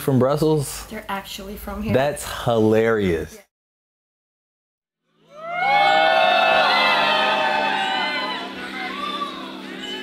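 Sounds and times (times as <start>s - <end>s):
concert crowd cheering and screaming: 5.3s - 9.6s.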